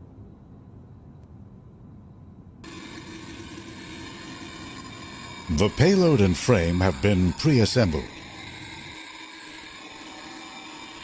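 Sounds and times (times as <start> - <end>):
gas hissing into balloon: 2.6 - 11.0.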